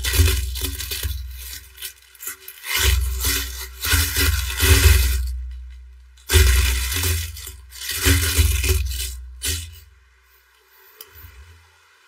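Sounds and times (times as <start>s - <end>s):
plastic wrapping crinkling: 0.0s - 10.0s.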